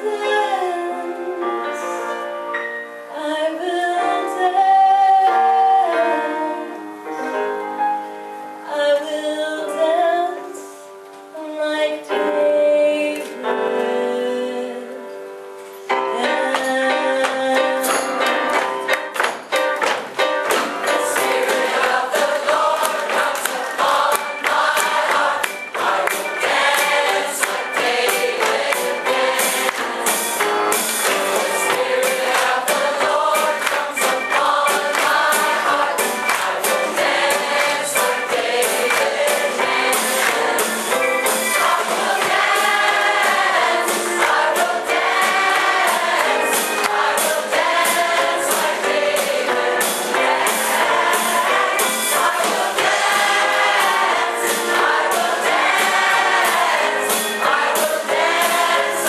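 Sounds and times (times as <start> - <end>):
drum kit beat: 17.6 - 59.0
mixed choir singing: 20.8 - 59.0.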